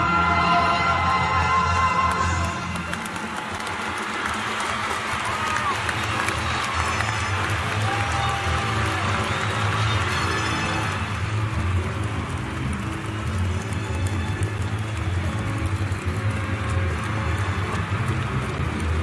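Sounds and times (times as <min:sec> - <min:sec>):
crowd cheering and applauding: 0:00.0 - 0:19.0.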